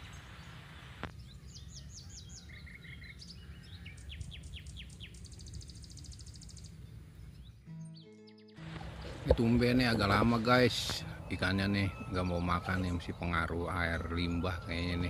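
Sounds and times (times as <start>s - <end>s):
small birds chirping: 0.0s - 15.0s.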